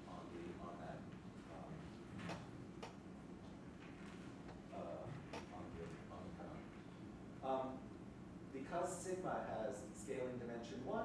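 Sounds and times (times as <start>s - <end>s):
low room tone: 0.0s - 11.0s.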